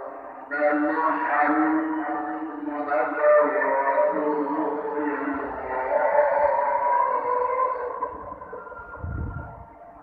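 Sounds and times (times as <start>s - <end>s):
call to prayer chanting: 0.0s - 9.8s.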